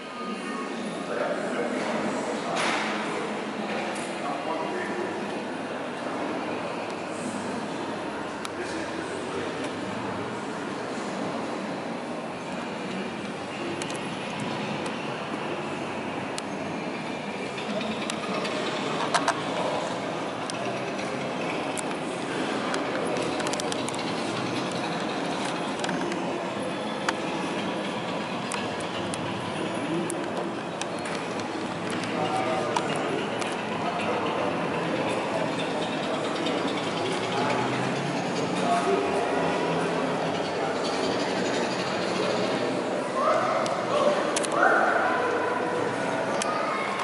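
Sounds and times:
exhibition hall background noise: 0.0 - 47.0.

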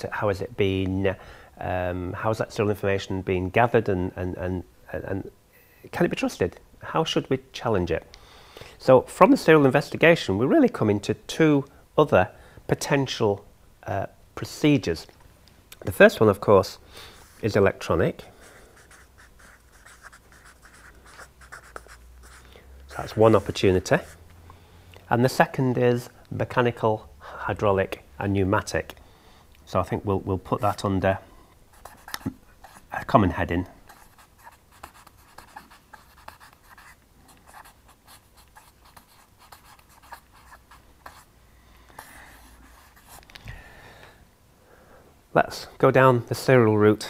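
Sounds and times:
marker pen scratching on paper: 18.4 - 24.2, 31.7 - 32.9, 33.8 - 41.3, 42.0 - 43.3.

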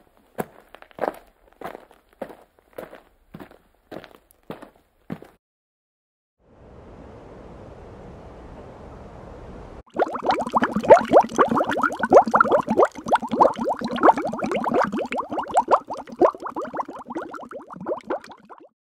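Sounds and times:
muffled underwater bubbling: 9.9 - 18.7.

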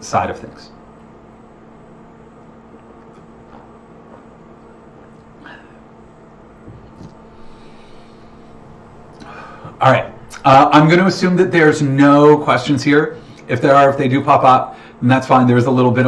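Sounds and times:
low electrical hum: 0.0 - 16.0
faint small noises: 0.7 - 10.8.

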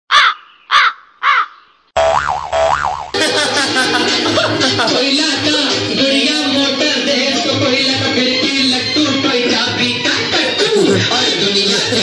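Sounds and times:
background music: 3.2 - 12.0.

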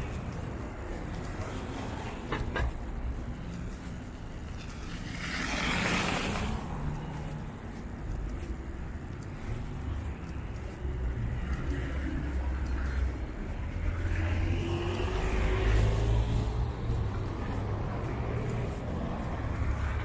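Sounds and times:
road traffic engines: 0.0 - 20.0
tyre noise on slushy road: 0.0 - 20.0
vehicle passing close: 4.4 - 7.9, 9.6 - 20.0.

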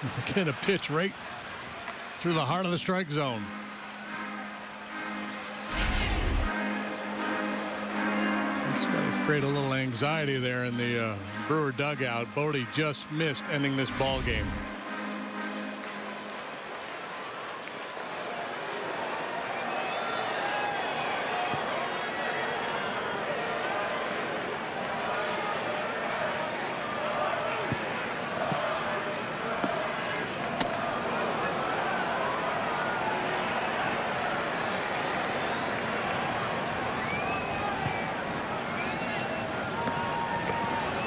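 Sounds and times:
crowd chattering and calling out: 0.0 - 17.8.

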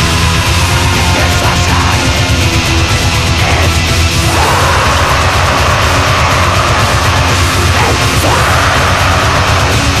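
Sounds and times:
thrash metal music: 0.0 - 10.0.

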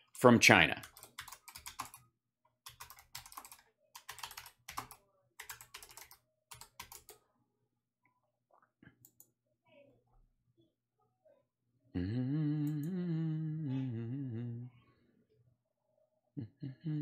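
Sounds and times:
typing on computer keyboard: 0.8 - 2.0, 2.6 - 7.2.

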